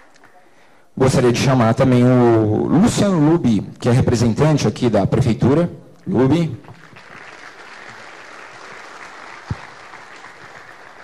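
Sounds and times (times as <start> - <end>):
audience applauding: 6.7 - 11.0.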